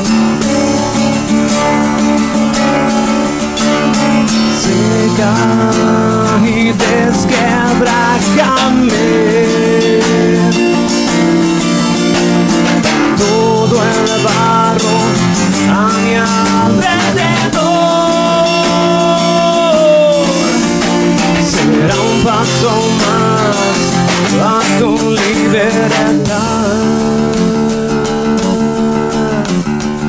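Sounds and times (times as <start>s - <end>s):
acoustic guitar: 0.0s - 30.0s
electric bass guitar: 0.0s - 30.0s
person singing long notes: 3.8s - 11.6s, 13.0s - 29.8s.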